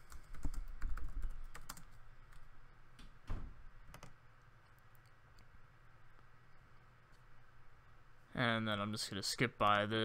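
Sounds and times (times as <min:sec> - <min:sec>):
computer keyboard typing: 0:00.0 - 0:02.5, 0:03.8 - 0:04.2.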